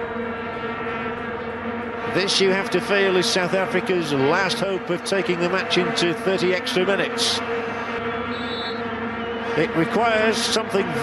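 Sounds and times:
vuvuzelas droning: 0.0 - 11.0.

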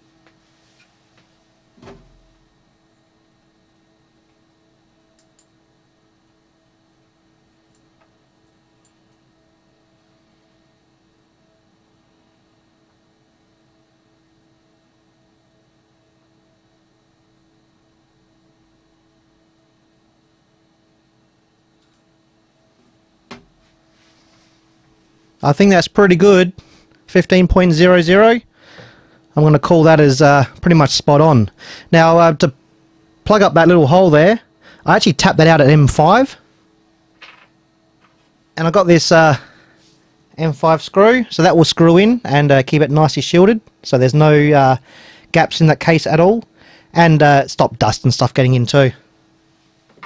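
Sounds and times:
faint steady hum: 0.0 - 50.0.

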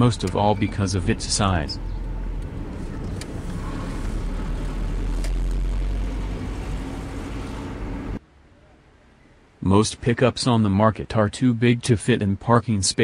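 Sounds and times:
car cabin engine rumble: 0.0 - 8.2.

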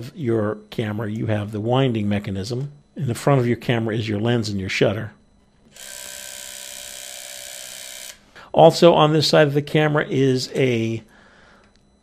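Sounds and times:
clockwork movie camera whirring: 5.7 - 8.3.

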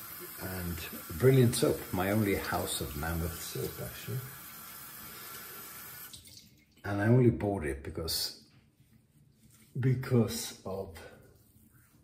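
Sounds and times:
water running from sink tap: 0.0 - 6.8.

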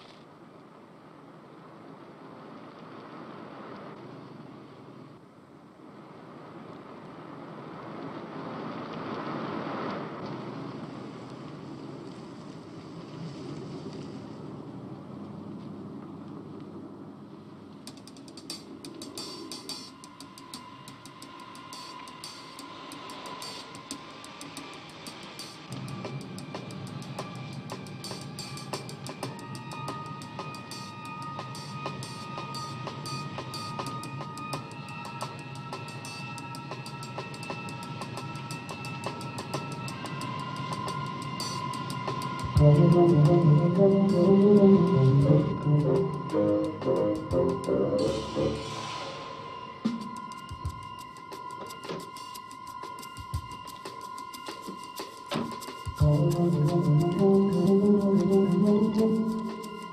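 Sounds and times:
cymbal and snare ticks: 17.9 - 29.4
film score music: 40.8 - 51.1, 56.0 - 59.9
bass line: 42.5 - 48.8, 56.0 - 59.6.

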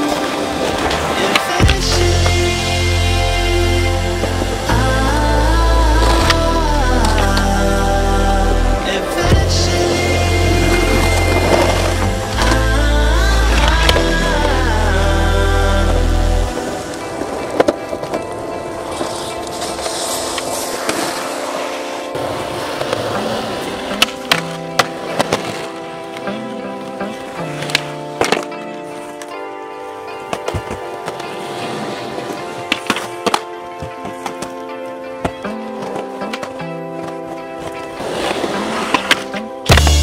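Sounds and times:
skateboard clicks: 0.0 - 2.0, 16.8 - 29.5, 30.2 - 40.0
music: 0.0 - 40.0
skateboard wheels rolling on asphalt: 0.0 - 40.0.

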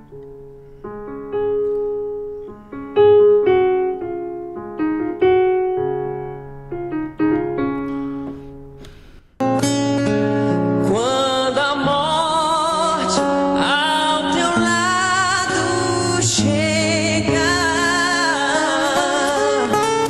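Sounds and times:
electric piano chords: 0.0 - 10.9.

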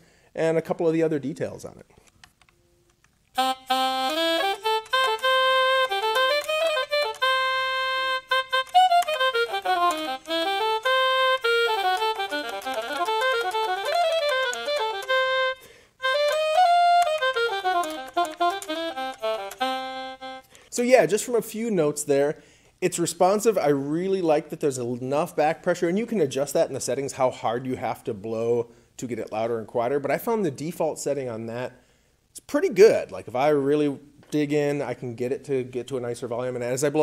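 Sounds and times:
electronic saxophone runs: 3.4 - 20.5.

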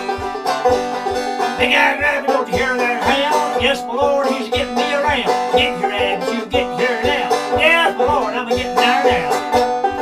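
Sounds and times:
banjo playing: 0.0 - 10.0
low thump on the beat: 0.0 - 10.0.

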